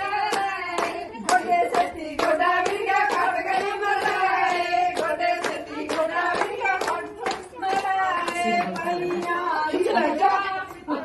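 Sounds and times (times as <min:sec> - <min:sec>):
hands clapping in rhythm: 0:00.0 - 0:10.9
women singing together: 0:00.0 - 0:11.0.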